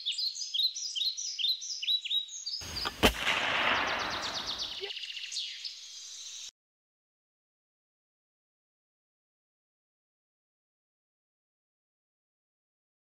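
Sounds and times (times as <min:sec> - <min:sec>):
bird chirping: 0:00.0 - 0:06.5
rush of noise to sharp crack: 0:02.7 - 0:04.8.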